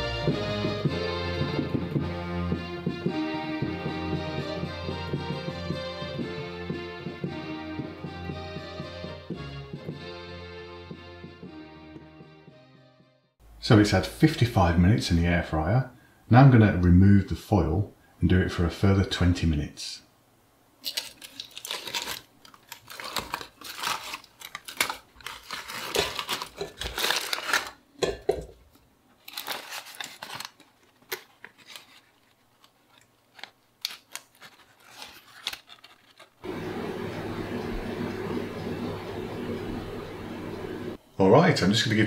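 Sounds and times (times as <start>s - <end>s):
aluminium foil crinkling and tearing: 20.8s - 36.4s
steady low hum: 36.4s - 41.9s.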